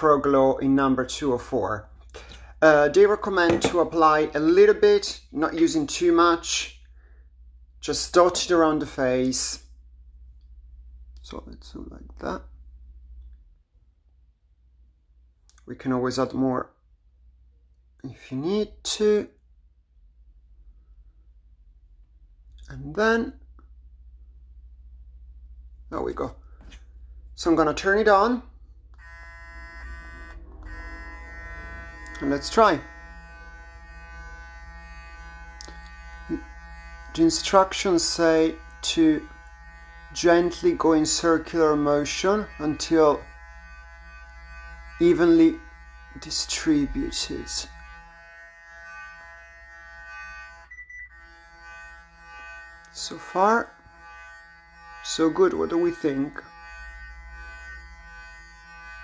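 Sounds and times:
facial brush electric buzz: 0:29.0 - 0:59.0.

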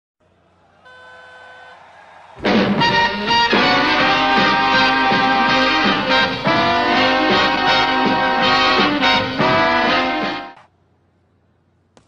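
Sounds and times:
low hum of arena noise: 0:00.2 - 0:12.0.

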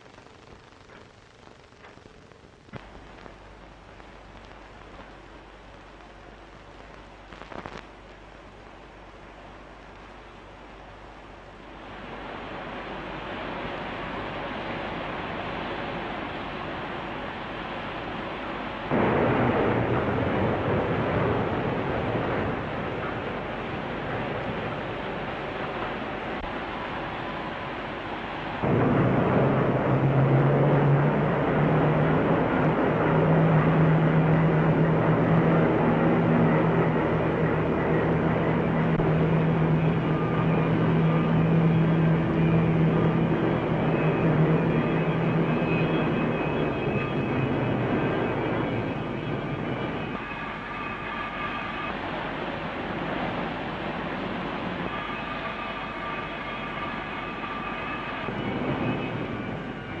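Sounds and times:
low hum: 0:00.0 - 1:00.0
steel mill mechanical roar: 0:08.1 - 1:00.0.

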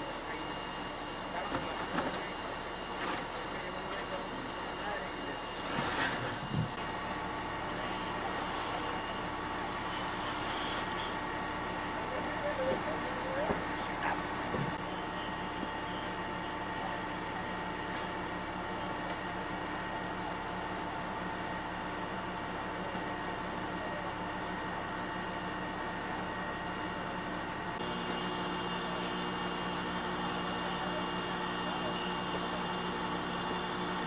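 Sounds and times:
machinery engine drone: 0:00.0 - 0:34.0.

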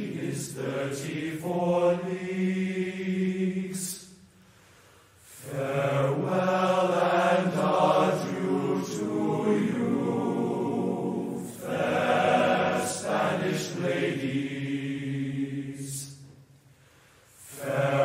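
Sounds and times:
low voices singing a sea shanty: 0:00.0 - 0:04.3, 0:05.2 - 0:16.5, 0:17.3 - 0:18.0.

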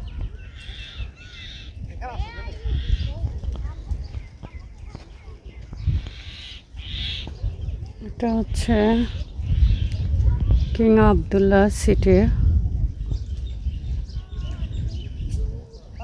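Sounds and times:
birds chirping: 0:00.0 - 0:16.0
wind rumbling on microphone: 0:00.0 - 0:16.0.

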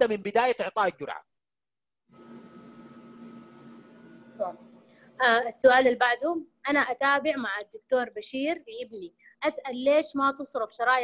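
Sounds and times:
thin high tone: 0:02.1 - 0:05.4
low electrical hum: 0:02.1 - 0:09.3.

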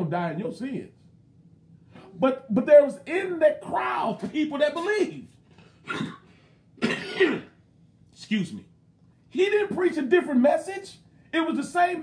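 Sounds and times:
man coughing: 0:05.8 - 0:07.6.

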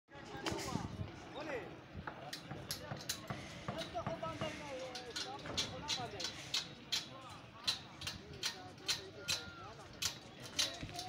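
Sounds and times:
workers calling: 0:00.2 - 0:11.0.

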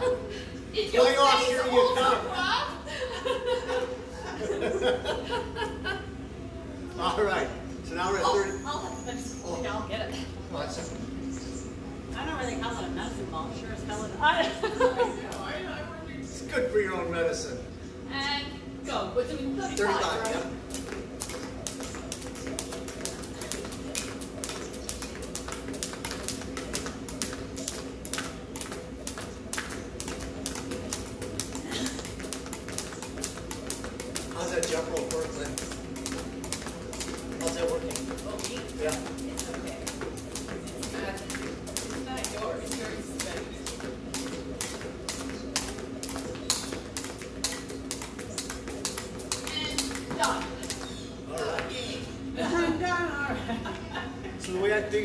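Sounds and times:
low steady hum: 0:00.0 - 0:55.0
jump rope slapping pavers: 0:19.6 - 0:51.8.

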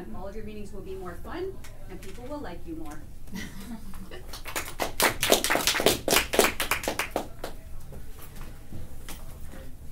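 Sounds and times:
small group applauding: 0:03.9 - 0:07.7.

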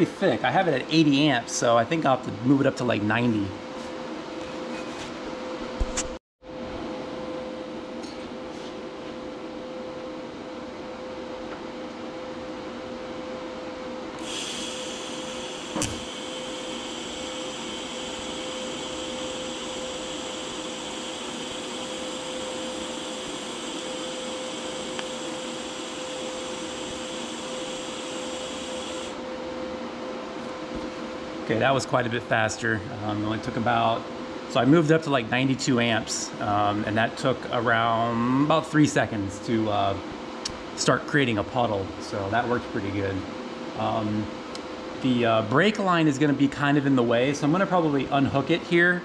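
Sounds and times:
steady shop hum: 0:00.0 - 0:49.0
welding arc hissing: 0:14.2 - 0:29.2.

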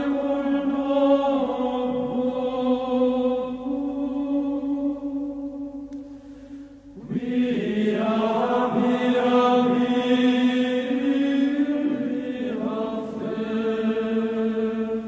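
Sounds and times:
chanted voices holding long notes: 0:00.0 - 0:05.9, 0:06.9 - 0:15.0.

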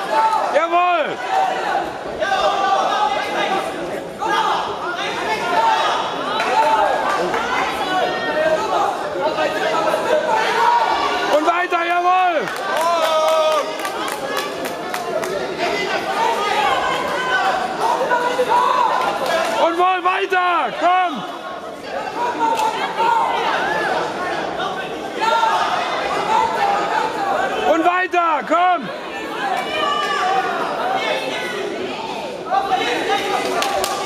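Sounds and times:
spectators chattering: 0:00.0 - 0:34.0.

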